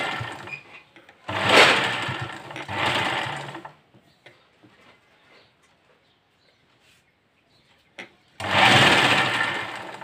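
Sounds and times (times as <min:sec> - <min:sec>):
sewing machine stitching: 0:00.0 - 0:03.8, 0:08.4 - 0:10.0.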